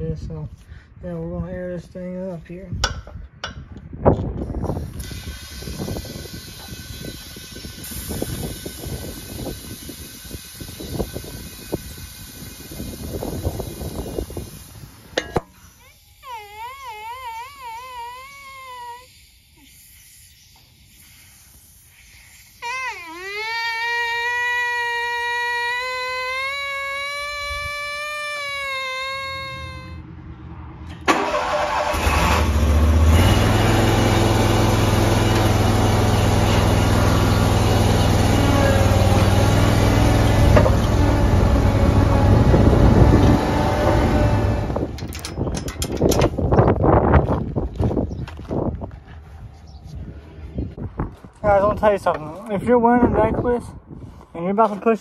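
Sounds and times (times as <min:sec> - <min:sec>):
riding lawn mower engine: 0:30.8 - 0:46.4.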